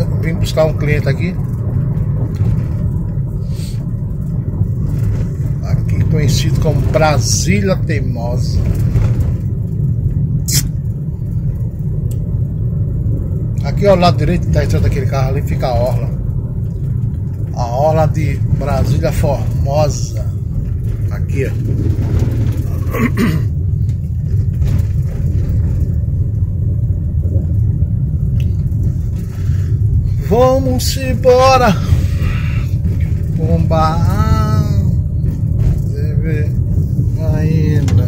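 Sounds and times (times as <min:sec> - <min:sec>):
car driving low rumble: 0:00.0 - 0:38.0.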